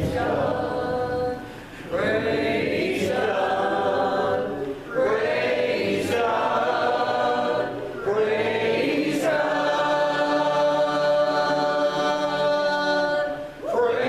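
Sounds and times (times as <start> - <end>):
gospel choir singing: 0.0 - 14.0.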